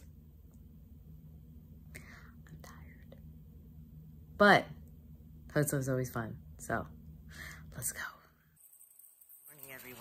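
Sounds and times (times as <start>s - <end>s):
faint room hum: 0.0s - 10.0s
woman whispering: 2.3s - 3.2s, 7.7s - 8.4s.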